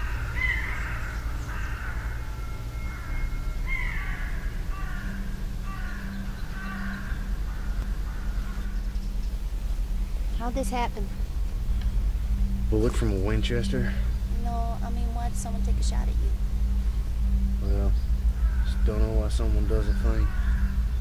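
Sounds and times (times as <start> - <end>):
crows cawing: 0.0 - 21.0
low hum: 0.0 - 21.0.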